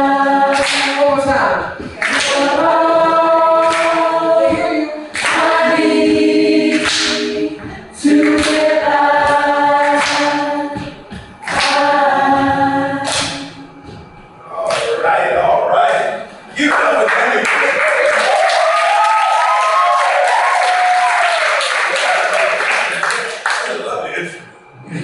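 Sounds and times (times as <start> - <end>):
person singing wordless notes: 0.0 - 14.7.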